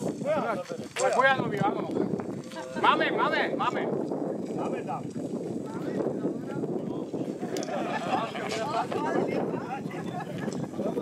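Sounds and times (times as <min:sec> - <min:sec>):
people talking: 0:00.2 - 0:11.0.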